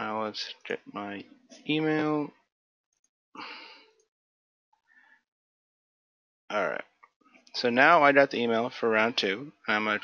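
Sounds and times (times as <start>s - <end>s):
breath into microphone: 3.4s - 4.0s.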